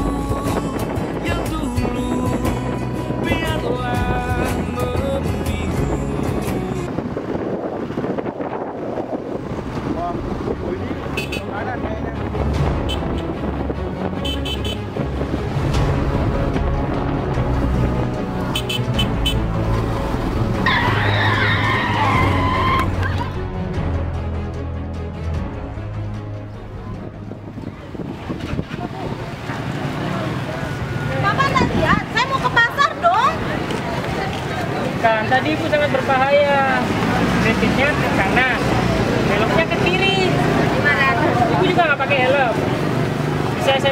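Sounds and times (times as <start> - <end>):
background music with a beat: 0.0 - 6.8
wind rush on microphone: 0.0 - 18.5, 26.5 - 34.8
motorcycle road noise: 0.0 - 43.9.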